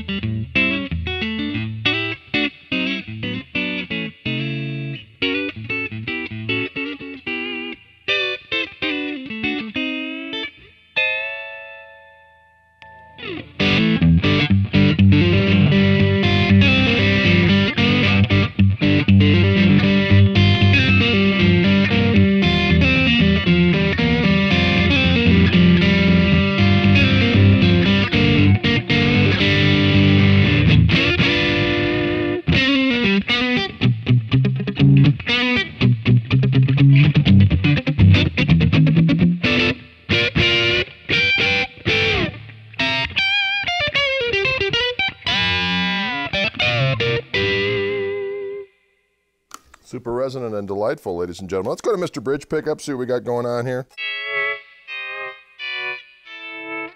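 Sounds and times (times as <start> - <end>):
electric guitar through an amp: 0.0 - 48.8, 53.9 - 56.9
bent guitar notes wavering: 0.0 - 49.0, 52.9 - 56.9.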